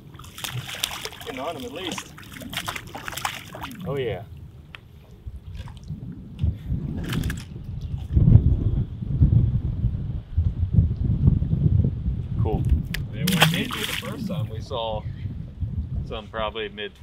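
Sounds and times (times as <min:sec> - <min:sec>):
wind buffeting microphone: 0:00.0 - 0:17.0
small fish splashing into water: 0:00.2 - 0:03.8, 0:13.2 - 0:14.4
loud water splash: 0:13.2 - 0:14.5.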